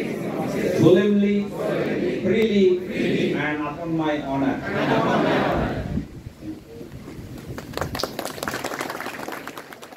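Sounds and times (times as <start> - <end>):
people clapping: 7.3 - 9.9.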